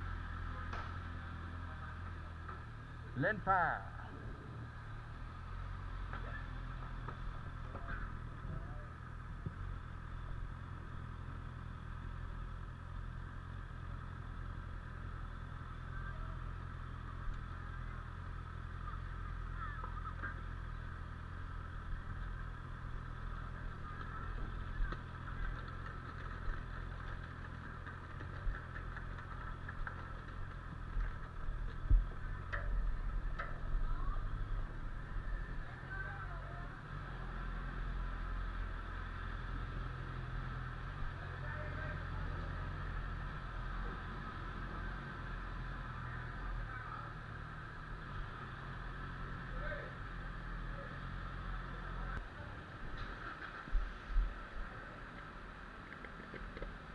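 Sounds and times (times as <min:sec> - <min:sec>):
motorcycle engine idling: 0:00.0 - 0:56.9.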